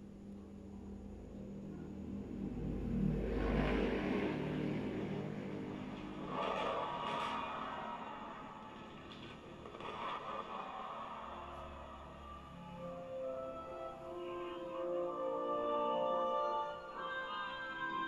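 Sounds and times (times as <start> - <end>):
fireworks rumble through tv speaker: 5.8 - 12.0.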